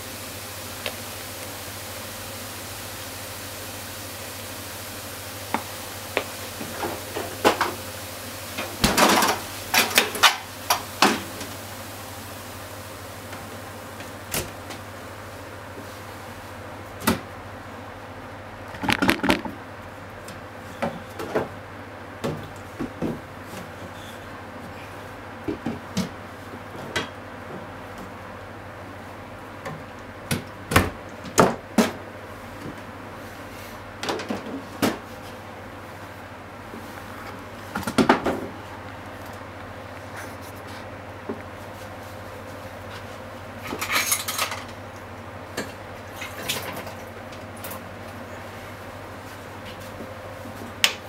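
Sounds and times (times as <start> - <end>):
food frying in a pan: 0.0 - 14.1.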